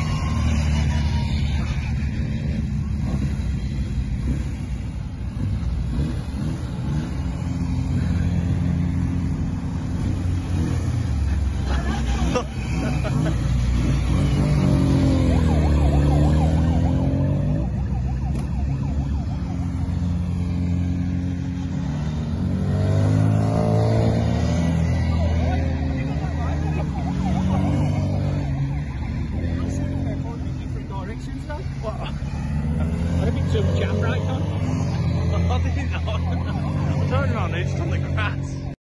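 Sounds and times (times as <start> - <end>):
small cars driving past: 0.0 - 38.8.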